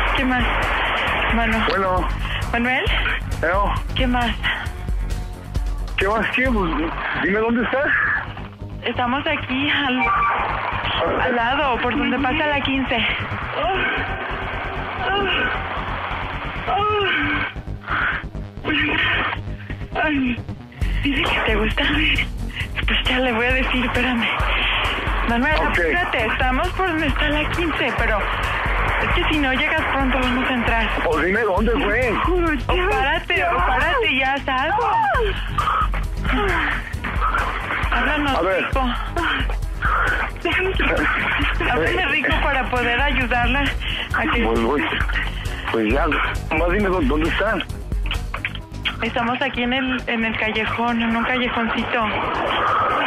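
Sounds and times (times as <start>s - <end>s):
music with low beat: 0.0s - 7.2s, 12.0s - 52.4s
woman moaning and sighing: 16.6s - 18.4s, 34.6s - 37.6s, 38.8s - 40.4s.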